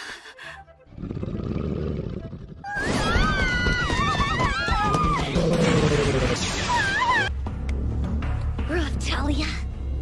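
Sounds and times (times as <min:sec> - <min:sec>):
low ominous drone music: 0:04.7 - 0:10.0.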